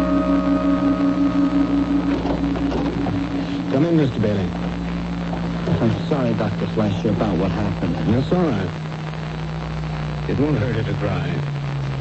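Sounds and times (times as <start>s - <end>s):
bell-like musical tone: 0.0s - 3.8s
low steady hum: 0.0s - 12.0s.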